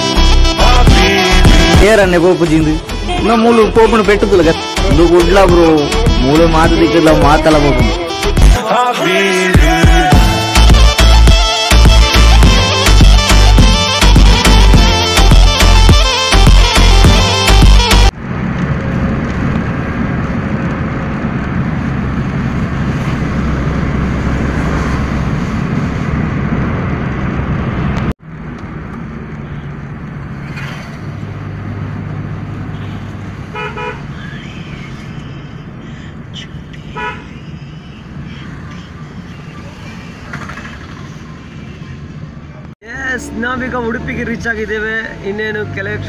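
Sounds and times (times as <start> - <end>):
car road noise on wet road: 18.1 - 46.0
car horn toots: 32.7 - 34.3, 36.8 - 37.4.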